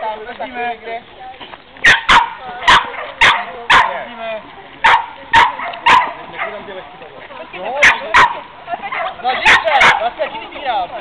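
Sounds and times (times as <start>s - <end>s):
dog barking: 1.8s - 4.1s, 4.8s - 6.7s, 7.8s - 10.1s.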